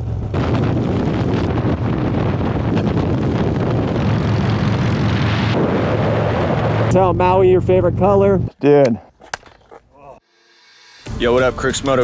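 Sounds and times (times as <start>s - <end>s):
wind rush on microphone: 0.0s - 8.4s
motorcycle engine drone: 0.0s - 8.5s.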